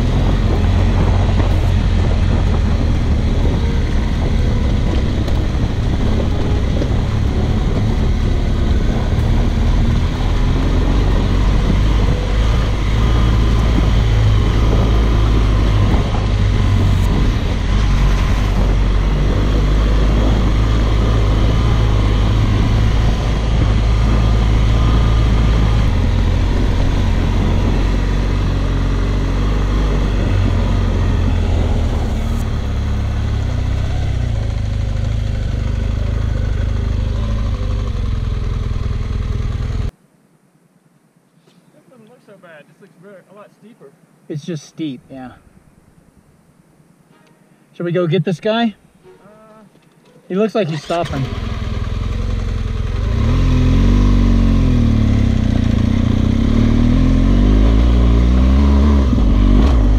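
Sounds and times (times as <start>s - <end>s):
motorcycle engine running: 0.0s - 39.9s, 50.8s - 59.9s
wind: 0.0s - 59.9s.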